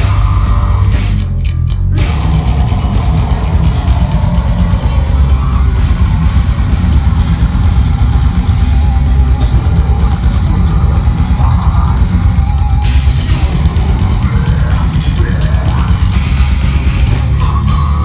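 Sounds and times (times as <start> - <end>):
death metal band playing: 0.0 - 18.0.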